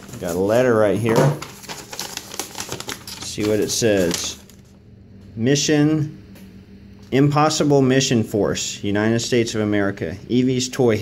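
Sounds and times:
paper crinkling: 0.0 - 4.8.

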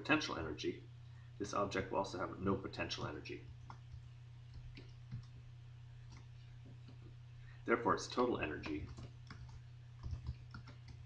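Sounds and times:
low steady hum: 0.0 - 11.0
keyboard keystrokes: 8.7 - 11.0.

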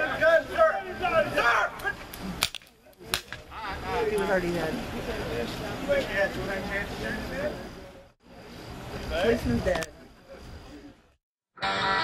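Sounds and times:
raised voices: 0.0 - 2.4.

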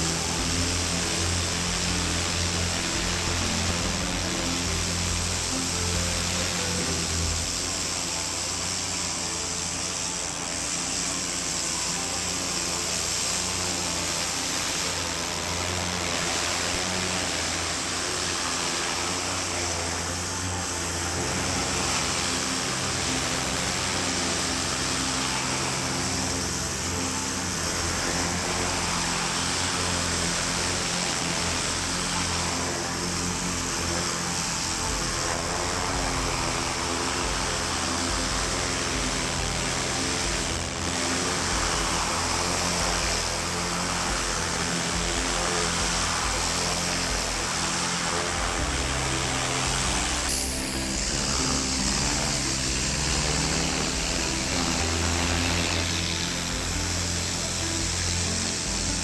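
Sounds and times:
pressure washer spraying water: 0.0 - 59.0.

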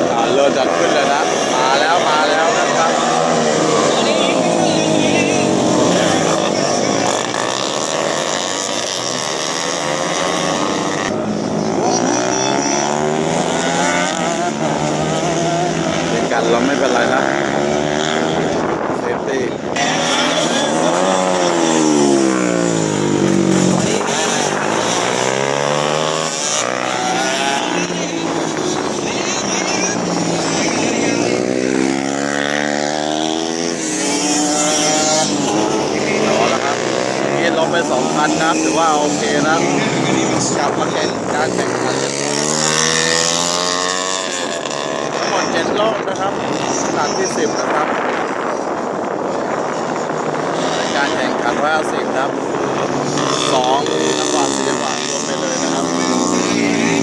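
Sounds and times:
race motorcycles cornering: 0.0 - 57.0.

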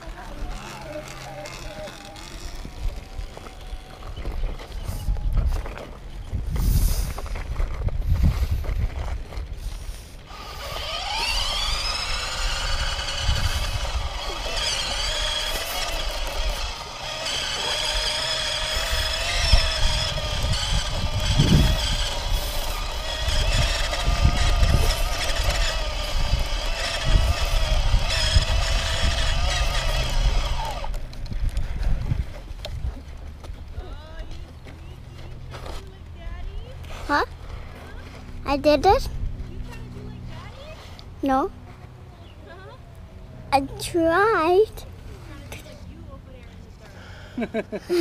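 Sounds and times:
electric bike motor whining: 0.0 - 32.8.

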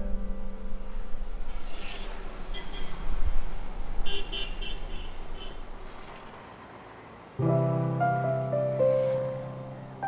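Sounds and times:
engine and traffic rumble: 0.0 - 10.0
vehicle horn tooting: 2.0 - 3.1, 4.0 - 5.6.

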